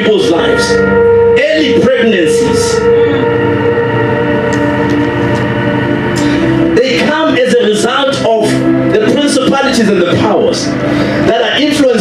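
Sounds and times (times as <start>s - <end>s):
keyboard sustained chord: 0.0s - 12.0s.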